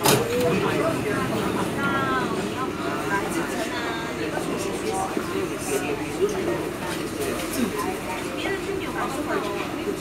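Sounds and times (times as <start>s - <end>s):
passengers chattering: 0.0s - 10.0s.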